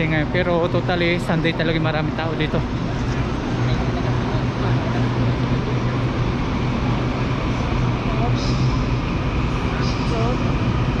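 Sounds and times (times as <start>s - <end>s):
electric train humming: 0.0s - 11.0s
noisy platform ambience: 0.0s - 11.0s.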